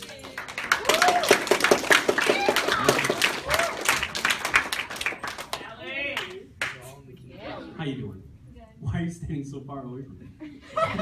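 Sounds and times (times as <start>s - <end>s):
audience clapping: 0.0s - 6.9s.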